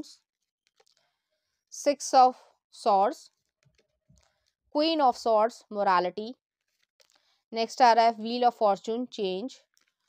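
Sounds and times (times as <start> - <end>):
woman speaking: 1.8 - 3.3, 4.8 - 6.4, 7.6 - 9.6.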